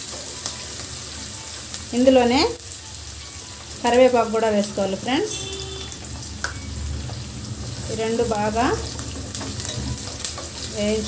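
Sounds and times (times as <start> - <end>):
onions sizzling in hot oil: 0.0 - 11.0.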